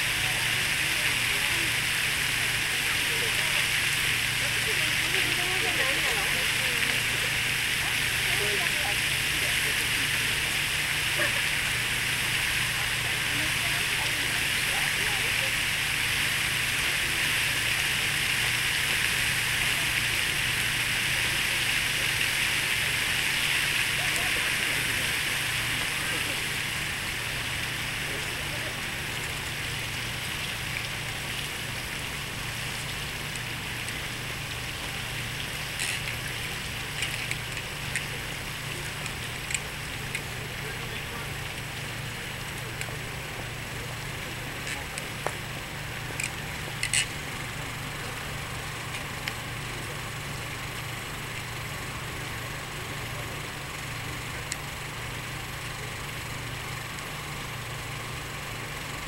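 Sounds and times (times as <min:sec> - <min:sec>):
fountain water rushing into basin: 0:00.0 - 0:59.0.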